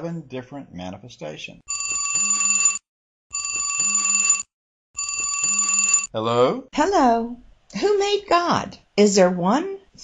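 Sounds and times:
mobile phone ringtone: 1.7s - 6.1s.

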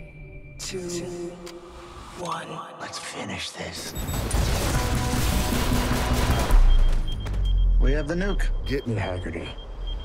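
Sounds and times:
trailer music: 4.0s - 10.0s
rapid gunfire: 4.1s - 6.8s.

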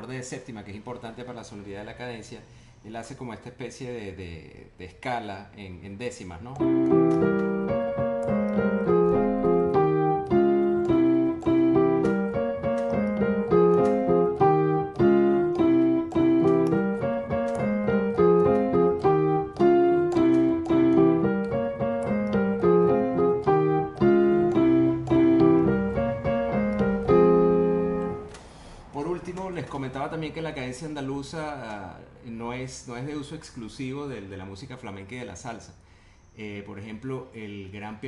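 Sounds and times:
solo piano salsa: 6.5s - 30.0s.

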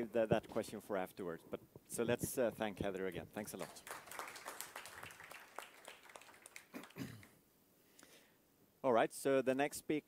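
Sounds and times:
audience applause: 3.6s - 7.3s.

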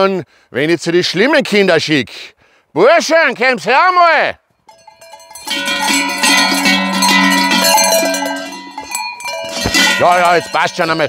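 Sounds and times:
large bells clanging: 4.7s - 11.0s.

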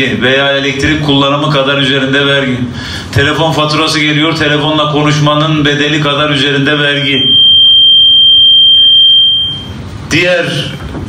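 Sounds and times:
microphone feedback whistle: 7.0s - 9.9s.

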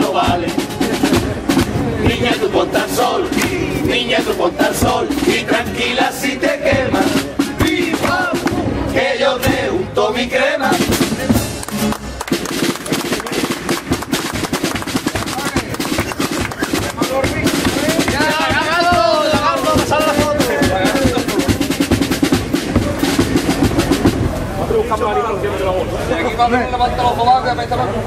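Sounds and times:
voices singing: 0.0s - 11.9s, 14.7s - 24.1s
snare and bass drum percussion: 0.0s - 24.9s.

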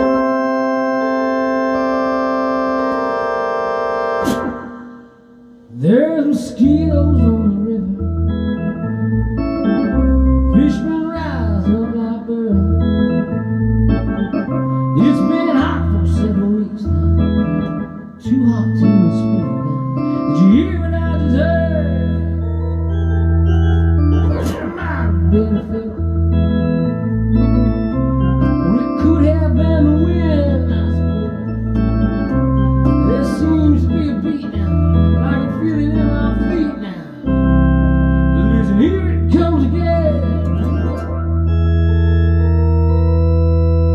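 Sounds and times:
electronic organ playing: 0.0s - 43.9s.

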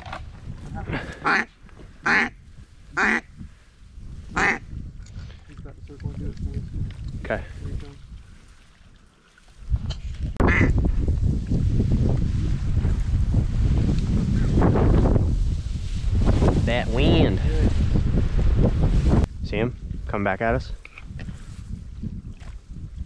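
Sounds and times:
wind rumble on microphone: 0.0s - 23.0s
duck call quacking: 1.2s - 2.3s, 3.0s - 3.2s, 4.4s - 4.6s, 10.4s - 10.7s.

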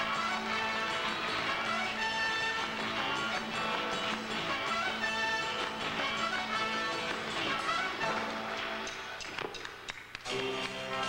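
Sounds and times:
live band playing: 0.0s - 9.2s.

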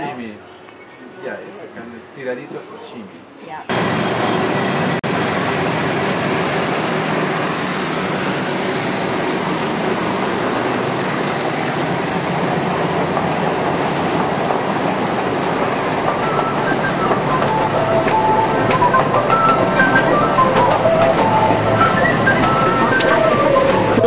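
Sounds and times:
train rumbling past: 3.7s - 24.0s.

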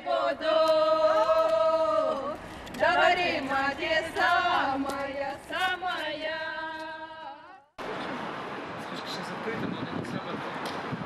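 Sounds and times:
women singing: 0.0s - 7.7s
street noise: 0.0s - 11.0s.

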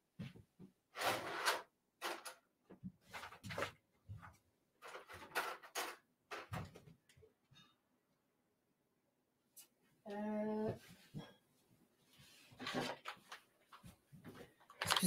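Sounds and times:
drawers opening and shutting: 0.9s - 2.4s, 4.8s - 6.7s
objects knocking and rustling: 2.0s - 7.1s, 12.5s - 15.0s.

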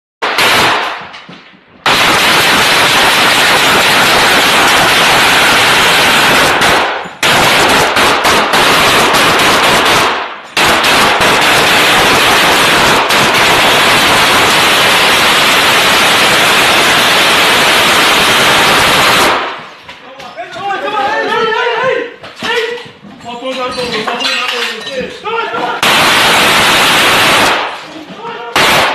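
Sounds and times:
automatic rifle fire: 0.2s - 1.1s, 1.8s - 17.1s, 25.8s - 27.8s, 28.6s - 28.9s.

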